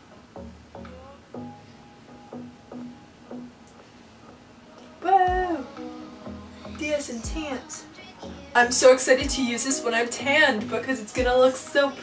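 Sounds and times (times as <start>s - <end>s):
plucked guitar music: 0.0s - 12.0s.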